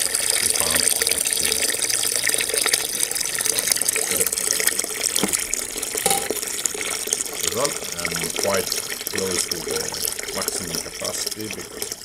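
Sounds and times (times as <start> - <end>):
liquid splashing into a kettle: 0.0 - 12.0.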